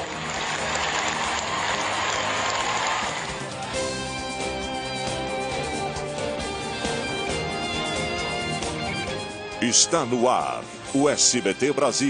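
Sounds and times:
news theme music with sustained tones: 0.0s - 12.0s.

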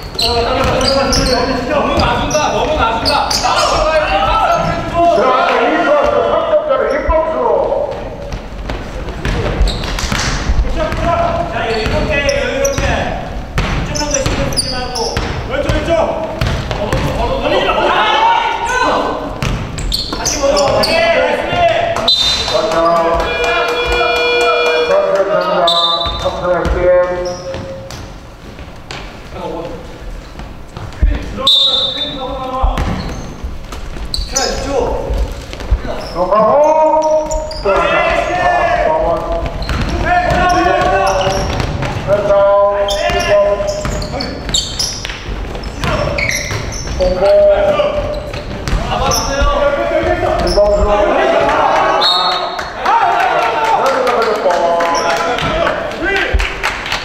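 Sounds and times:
players calling out: 0.0s - 27.8s, 34.1s - 56.5s
basketball dribbling on hardwood: 8.2s - 12.1s, 15.2s - 17.1s.

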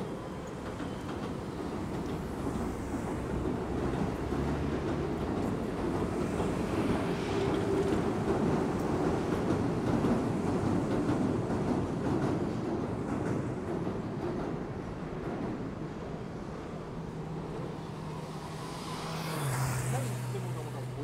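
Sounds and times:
vehicle passing: 17.8s - 21.0s.

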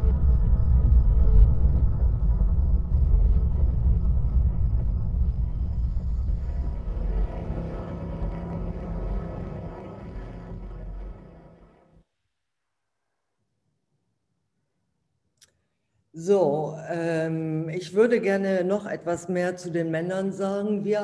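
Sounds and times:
deep rumbling drone: 0.0s - 12.0s.

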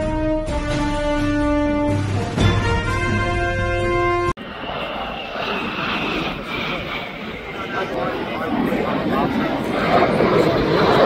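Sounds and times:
jet engines flying past: 3.2s - 11.0s.

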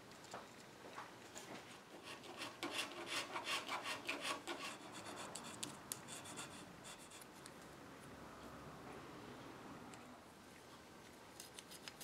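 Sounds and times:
steel blade scraping wood: 2.0s - 7.3s.

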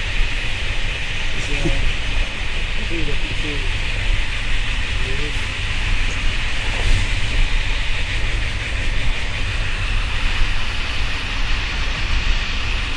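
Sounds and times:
train rumbling inside carriage: 0.0s - 12.9s.

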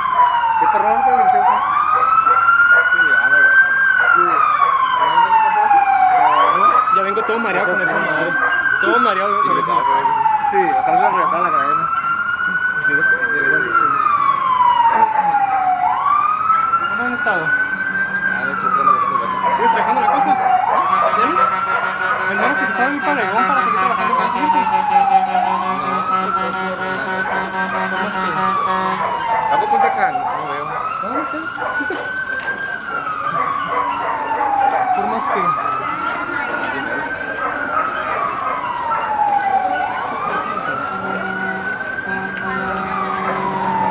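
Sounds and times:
siren wailing: 0.0s - 43.9s.

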